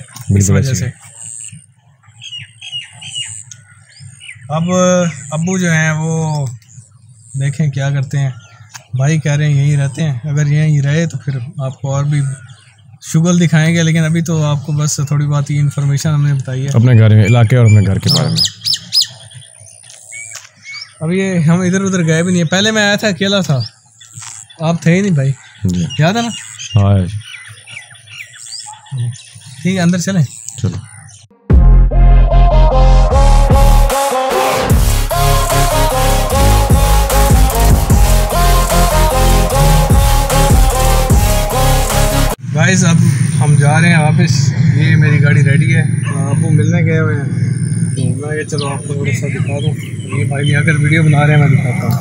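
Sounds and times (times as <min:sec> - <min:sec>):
bird chirping: 0:00.0 - 0:31.4, 0:35.1 - 0:52.0.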